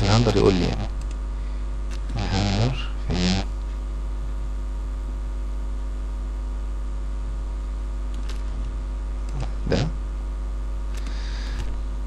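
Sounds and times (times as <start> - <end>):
low electrical hum: 0.0 - 12.0
man murmuring: 2.2 - 3.5, 9.4 - 10.0.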